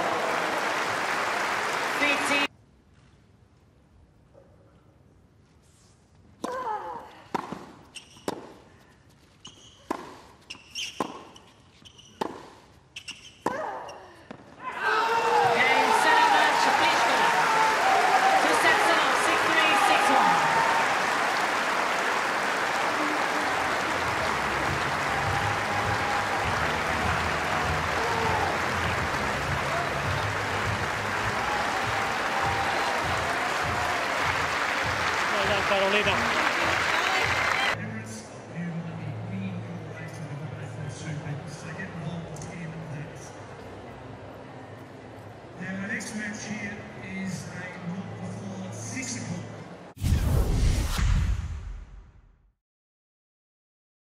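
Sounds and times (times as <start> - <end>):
crowd cheering and applause: 0.0 - 2.5, 14.6 - 37.8.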